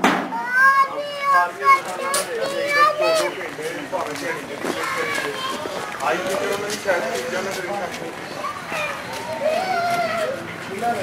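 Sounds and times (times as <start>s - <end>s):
overlapping voices chattering: 0.3s - 11.0s.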